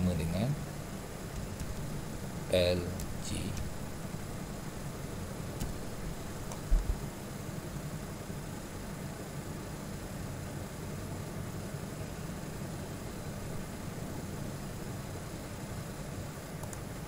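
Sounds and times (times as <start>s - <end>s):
low hum: 0.0s - 7.3s
even hiss: 0.0s - 8.2s.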